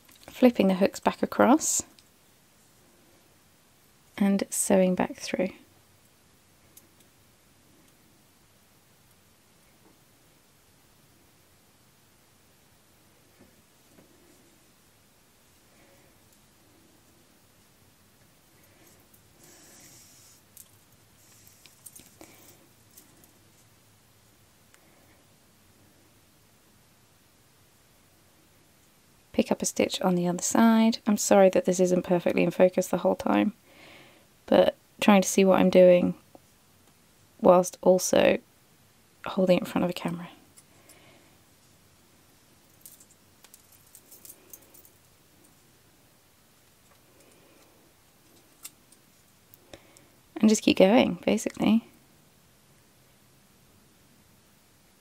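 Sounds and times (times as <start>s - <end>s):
light metallic clicks and jingles: 42.7s - 45.6s.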